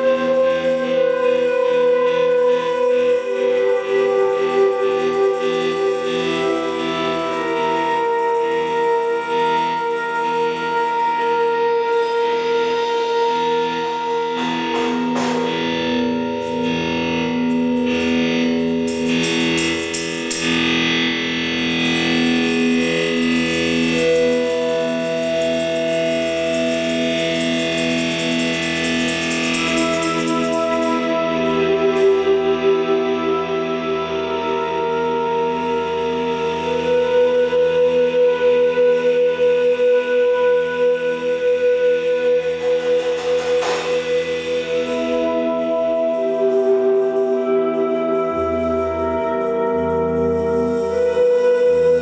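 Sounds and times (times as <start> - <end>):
band playing drone music: 0.0 - 52.0.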